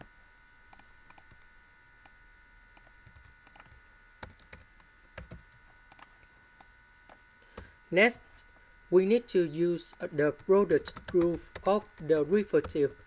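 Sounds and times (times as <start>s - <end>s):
computer keyboard typing: 0.7s - 1.4s, 2.8s - 7.3s, 9.9s - 13.0s.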